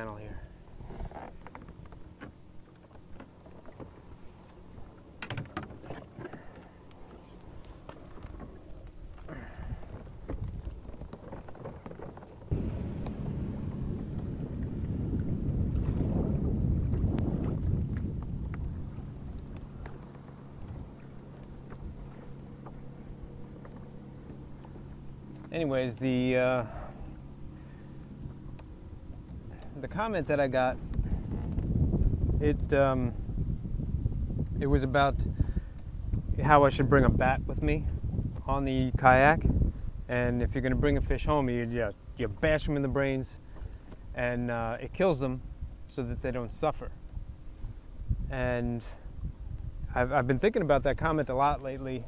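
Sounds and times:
motorboat engine hum: 0:00.0 - 0:52.0
rushing engine and water noise: 0:00.0 - 0:52.0.

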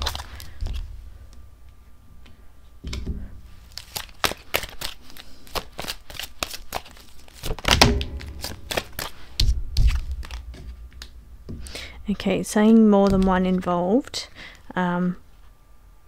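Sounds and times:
cards being shuffled: 0:00.0 - 0:01.4, 0:02.9 - 0:13.7
cards thumping on table: 0:07.4 - 0:11.8.

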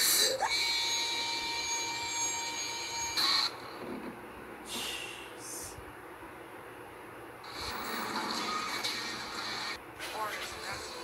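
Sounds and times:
high-pitched electronic tone: 0:00.0 - 0:03.6.

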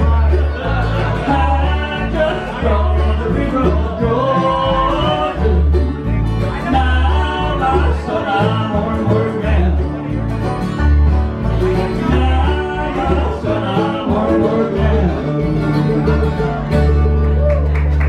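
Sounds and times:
bluegrass band playing: 0:00.0 - 0:18.0.

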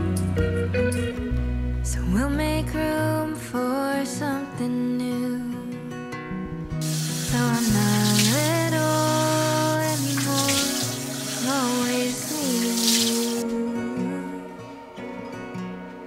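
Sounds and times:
tap running: 0:06.8 - 0:13.4
water splashing on face: 0:06.8 - 0:13.4
song with sung melody: 0:06.8 - 0:16.0.

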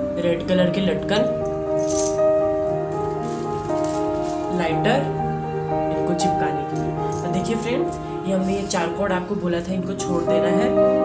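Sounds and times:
sustained background music chords: 0:00.0 - 0:11.0.

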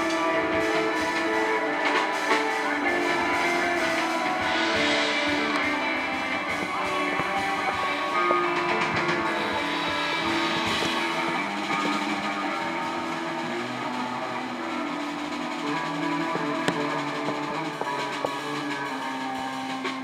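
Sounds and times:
electric guitar: 0:00.0 - 0:20.0
piano: 0:00.0 - 0:20.0.

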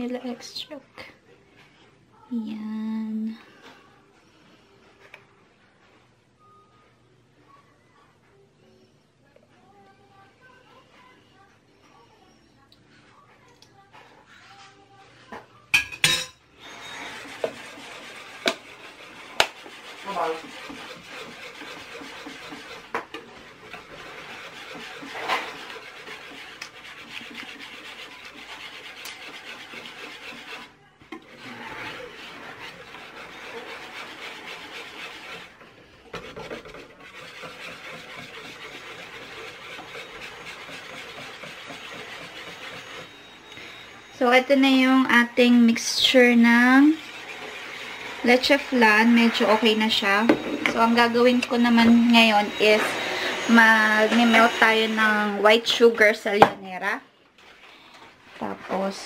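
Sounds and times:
whisk scraping in metal bowl: 0:16.6 - 0:56.4.

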